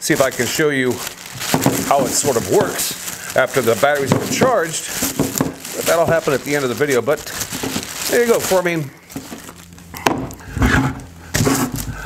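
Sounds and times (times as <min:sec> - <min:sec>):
handling noise: 0:00.0 - 0:12.0
battery pack knocking on wood: 0:04.0 - 0:05.7.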